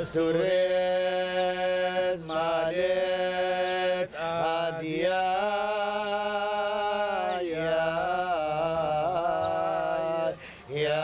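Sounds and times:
men chanting a hymn: 0:00.0 - 0:11.0.

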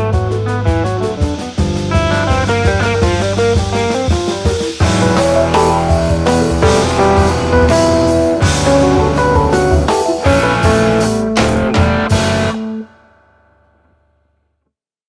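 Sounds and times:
jazz-rock fusion band playing: 0:00.0 - 0:12.8
band accented hits: 0:00.0 - 0:13.3.

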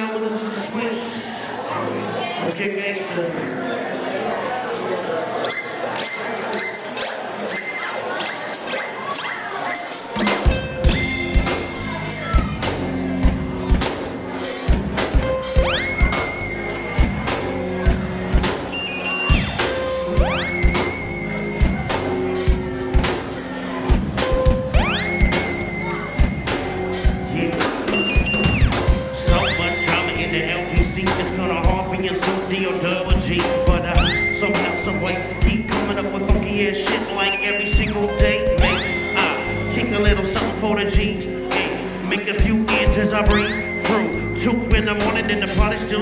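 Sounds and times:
live band playing: 0:05.4 - 0:46.0
high repeated melodic figure: 0:14.2 - 0:32.2, 0:32.8 - 0:46.0
high gliding lead tone: 0:15.2 - 0:30.8.

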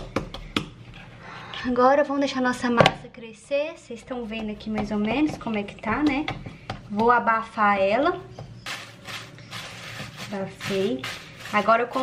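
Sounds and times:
plastic bag crinkling: 0:08.7 - 0:12.0.

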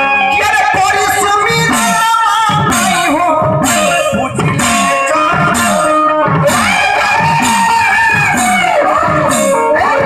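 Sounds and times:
high wavering melody: 0:01.7 - 0:10.0.

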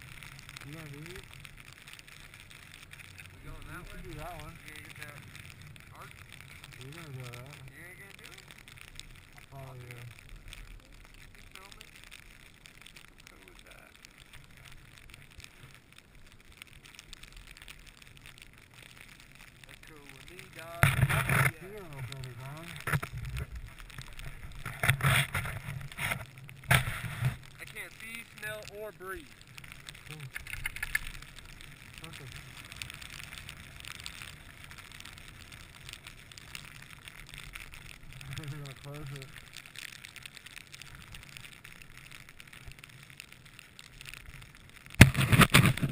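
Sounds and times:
low rumble: 0:00.0 - 0:12.0
crackle of small ticks: 0:00.0 - 0:45.9
rustling and clicks on camera: 0:00.0 - 0:45.9
wind rumbling on microphone: 0:00.0 - 0:45.9.

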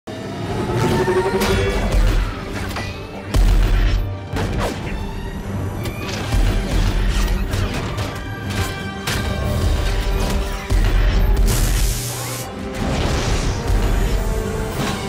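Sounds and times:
film music score: 0:00.1 - 0:15.0.

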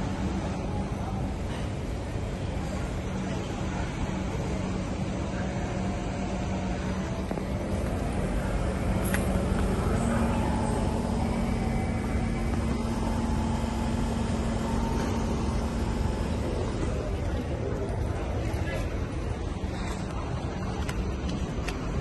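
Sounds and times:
train equipment humming: 0:00.0 - 0:22.0.

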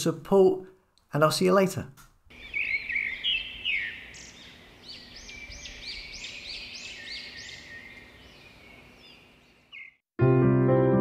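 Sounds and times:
bird chirping: 0:02.3 - 0:10.1.

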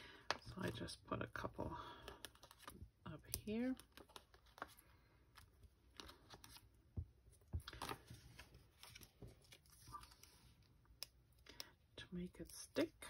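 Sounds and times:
paper rustling: 0:07.5 - 0:10.6.

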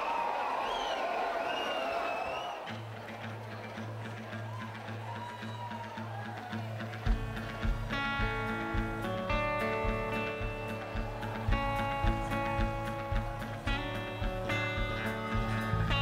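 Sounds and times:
crowd noise: 0:00.0 - 0:16.0
country band playing: 0:03.2 - 0:16.0.

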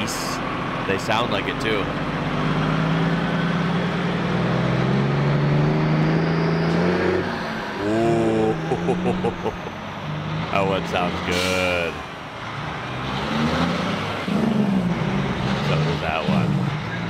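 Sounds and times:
bus diesel engine passing: 0:00.0 - 0:17.0
voices: 0:07.8 - 0:09.8, 0:10.5 - 0:12.0, 0:15.6 - 0:17.0.

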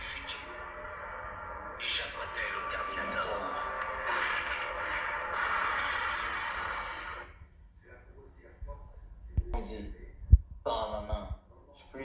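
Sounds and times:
film soundtrack through phone speaker: 0:00.0 - 0:12.0.

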